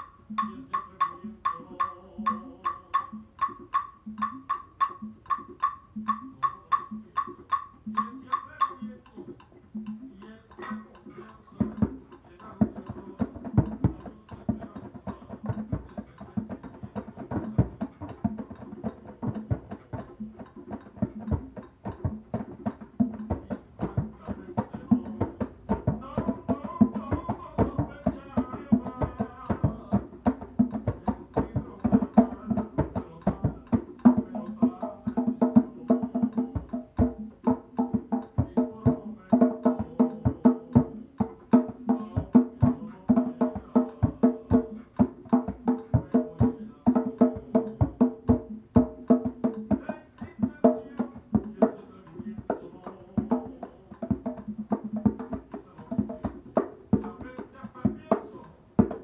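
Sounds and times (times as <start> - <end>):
djembes played by hand: 0.0 - 59.0.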